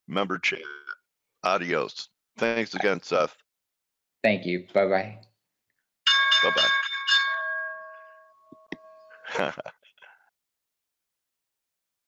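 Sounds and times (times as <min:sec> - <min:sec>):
bell-like chime ringing: 0:06.1 - 0:09.4.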